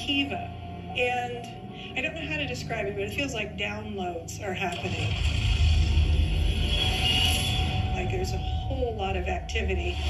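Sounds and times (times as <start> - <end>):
ambient background music: 0.0 - 10.0.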